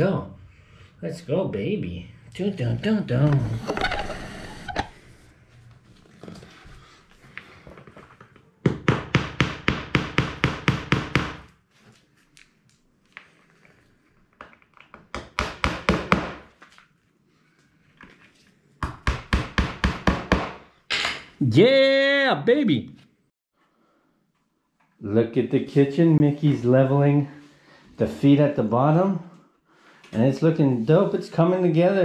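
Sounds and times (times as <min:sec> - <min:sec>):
hammer tapping on wood panel: 0:08.6 - 0:11.5, 0:15.2 - 0:16.4, 0:18.8 - 0:20.6.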